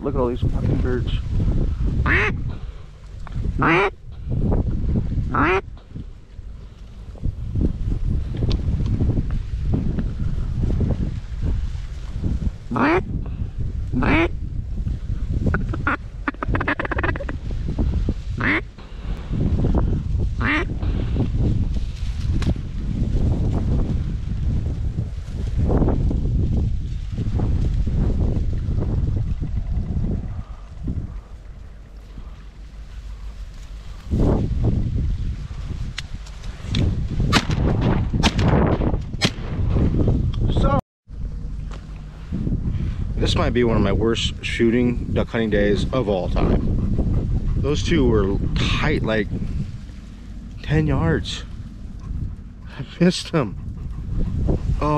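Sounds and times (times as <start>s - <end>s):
wind rumble on microphone: 0.0s - 54.9s
ducks quacking: 2.0s - 2.5s, 3.6s - 4.0s, 5.3s - 5.7s, 12.7s - 13.1s, 14.0s - 14.4s, 15.5s - 17.4s, 18.4s - 18.7s, 20.4s - 20.8s.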